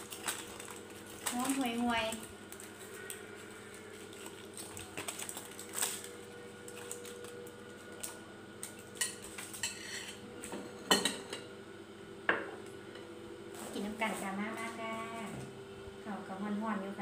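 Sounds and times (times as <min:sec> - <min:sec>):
foil crinkling: 0:00.0 - 0:09.7
metal spoon scraping a plate: 0:09.6 - 0:10.2.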